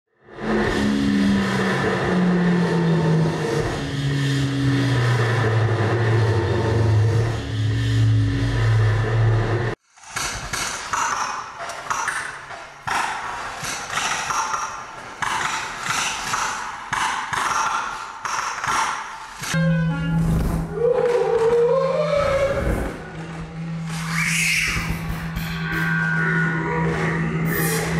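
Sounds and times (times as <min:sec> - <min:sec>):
low tone sliding downward: 0:00.3 - 0:09.8, 0:19.5 - 0:27.9
dense electronic noise wash: 0:00.3 - 0:20.9, 0:21.8 - 0:27.9
crackling stuttering noise bursts: 0:00.5 - 0:19.6.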